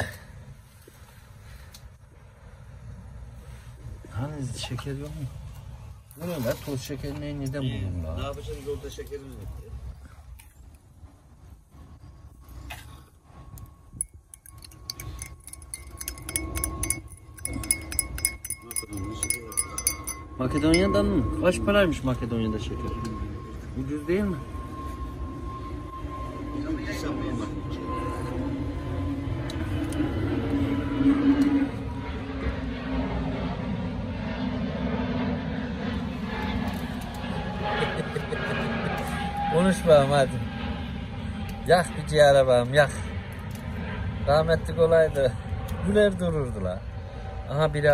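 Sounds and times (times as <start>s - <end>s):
teaspoon clinking against glass: 14.0s - 21.1s.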